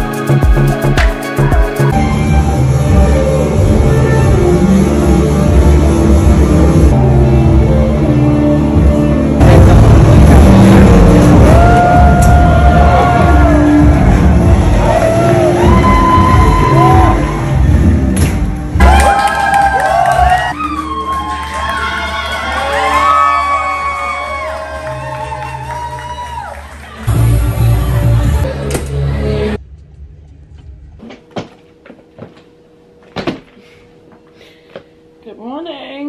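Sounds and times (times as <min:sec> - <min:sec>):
loud music with heavy beat: 0:00.0 - 0:07.8, 0:08.7 - 0:19.1
people shouting and whooping: 0:11.1 - 0:17.6, 0:18.8 - 0:28.4.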